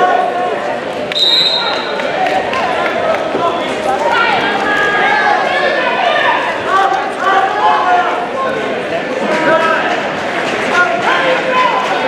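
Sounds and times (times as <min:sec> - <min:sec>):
referee's whistle: 0:01.1 - 0:01.9.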